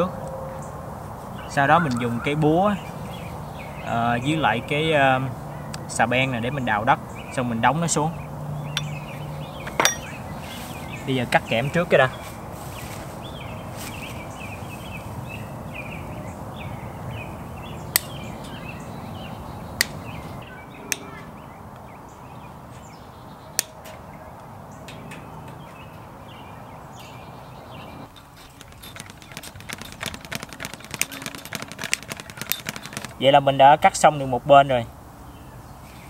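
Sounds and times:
birds chirping: 0:00.0 - 0:36.0
metal mesh clicks and rattles: 0:24.8 - 0:26.2, 0:28.1 - 0:33.2
wire cutters snipping wire: 0:28.1 - 0:33.2.

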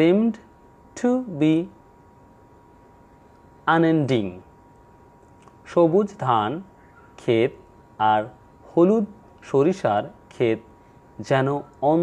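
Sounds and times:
man speaking: 0:00.0 - 0:01.8, 0:03.7 - 0:04.5, 0:05.6 - 0:12.0.

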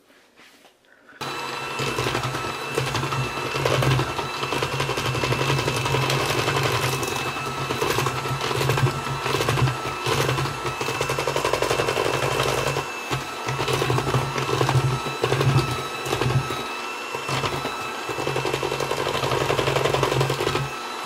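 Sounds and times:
electric hand mixer humming: 0:01.1 - 0:21.0.

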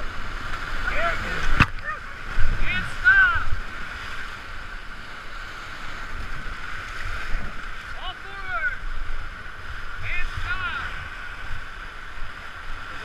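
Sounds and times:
whitewater rapids rushing: 0:00.0 - 0:13.0.

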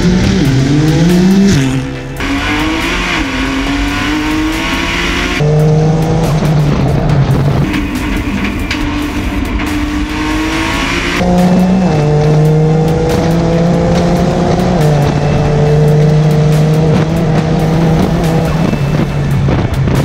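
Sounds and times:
car engine at full throttle: 0:00.0 - 0:20.0.

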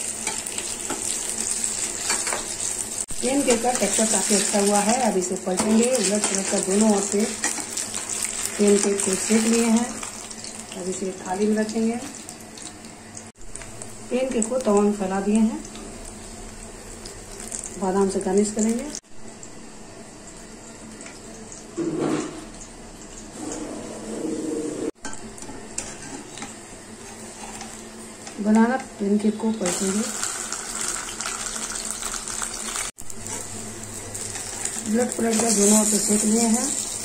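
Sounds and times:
pancake batter sizzling: 0:29.7 - 0:37.0.

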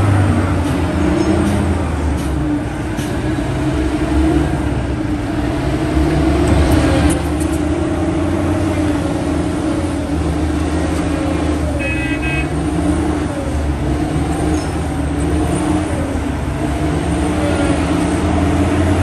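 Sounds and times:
diesel engine under load: 0:00.0 - 0:19.0.

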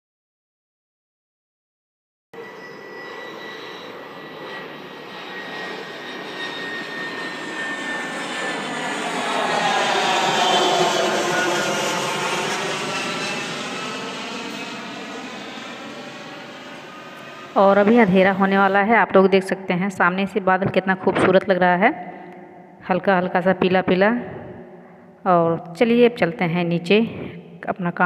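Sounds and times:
faint high engine whine: 0:02.4 - 0:20.4
jet airliner flying overhead: 0:02.4 - 0:28.0.

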